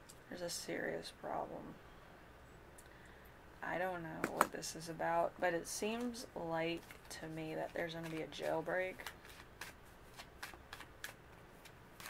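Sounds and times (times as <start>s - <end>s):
cards flicking and sliding: 7.7s - 12.0s.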